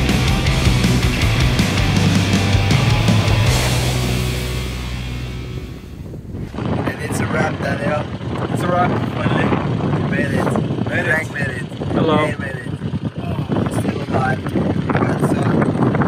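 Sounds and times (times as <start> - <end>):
heavy rock music: 0.0 - 6.8
men talking: 6.6 - 15.7.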